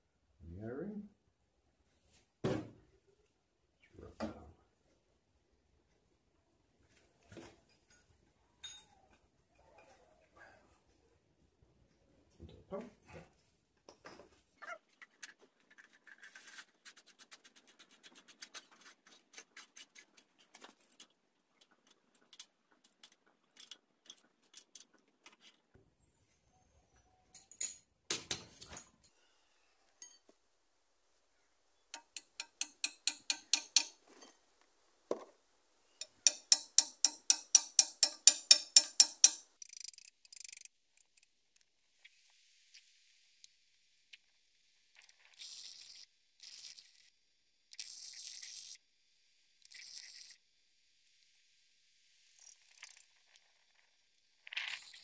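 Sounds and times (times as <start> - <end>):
rapid ratchet-like clicking: 32.0 - 34.0, 36.0 - 41.3, 45.3 - 47.1.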